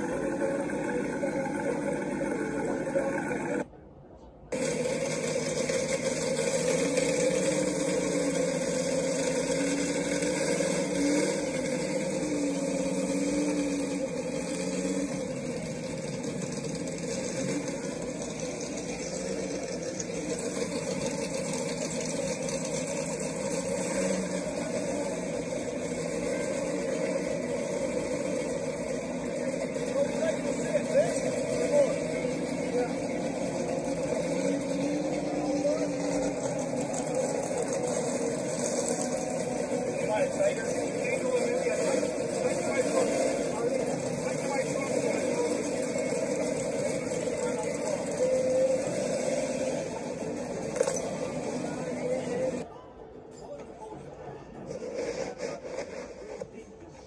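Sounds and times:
vehicle engines running: 0.0s - 52.7s
outdoor background noise: 0.0s - 57.0s.

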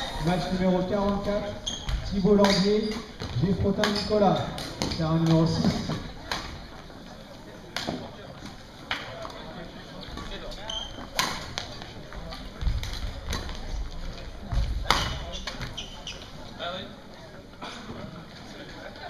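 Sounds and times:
racket hitting shuttlecock: 14.8s - 15.7s.

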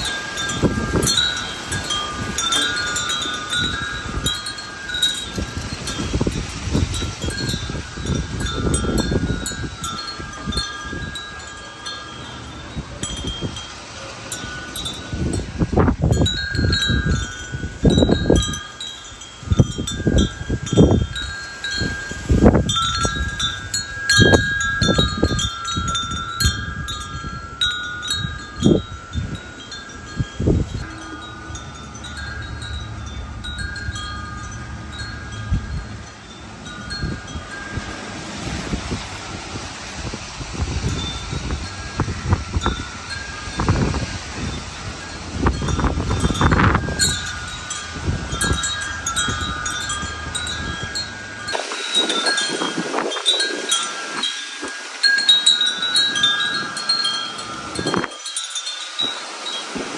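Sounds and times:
wind rumble on microphone: 0.0s - 58.4s
tubular wind chime ringing: 0.0s - 59.9s.

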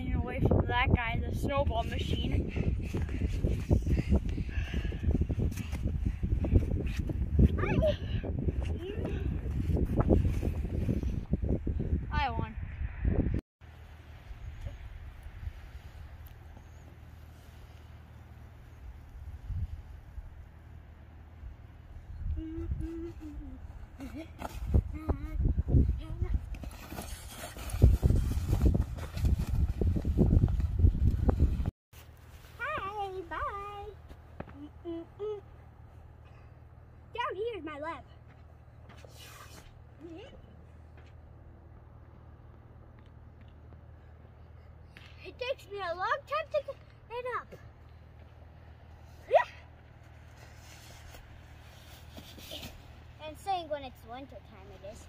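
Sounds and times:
child humming: 22.2s - 23.7s, 34.6s - 35.5s
rustle of snow: 32.0s - 33.8s, 50.0s - 53.1s.

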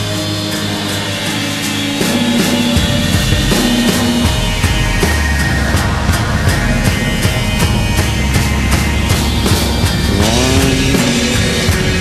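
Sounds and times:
rock band guitars playing: 0.0s - 12.0s.

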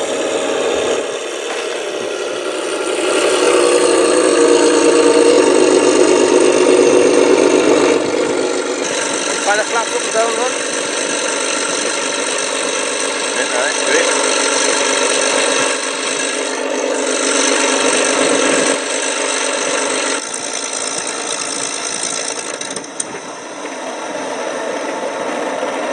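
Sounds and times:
model plane engine idling: 0.0s - 25.9s.

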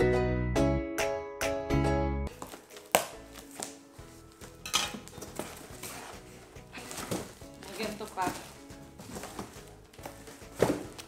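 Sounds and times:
quiet background music: 0.7s - 11.0s
bubble wrap rustling: 2.3s - 11.0s.

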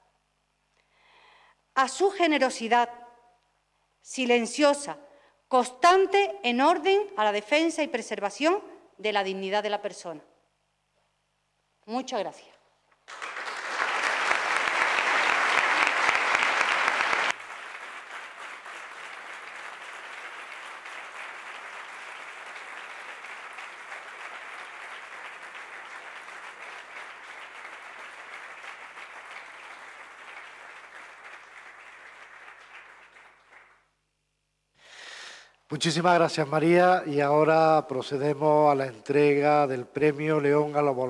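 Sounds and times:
audience applauding: 13.1s - 33.8s.

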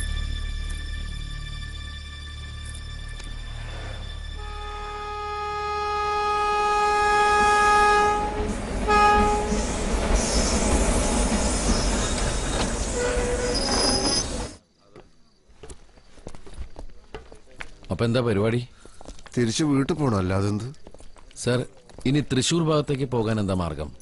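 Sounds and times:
train rumbling: 3.2s - 14.6s
locomotive horn blasts: 4.3s - 9.7s, 12.9s - 14.3s
wheel squeal: 9.3s - 14.6s.

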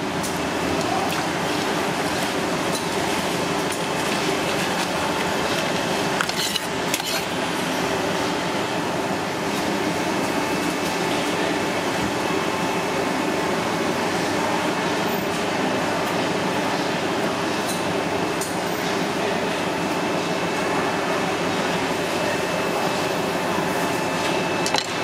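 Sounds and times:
steady background noise: 0.0s - 25.0s.

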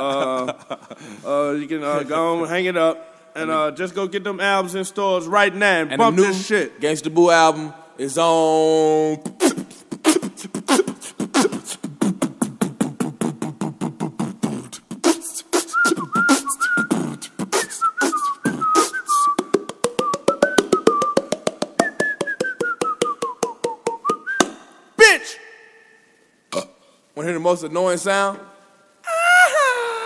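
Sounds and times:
sharp vocal burst: 9.2s - 12.0s
beatboxing clicks and pops: 9.2s - 24.7s
whistled tune: 15.0s - 24.6s.

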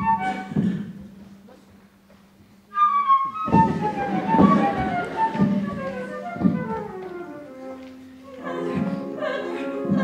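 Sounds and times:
flute melody: 0.0s - 0.7s, 2.7s - 10.0s
orchestra playing: 2.7s - 10.0s
dull thumps: 3.4s - 7.2s.

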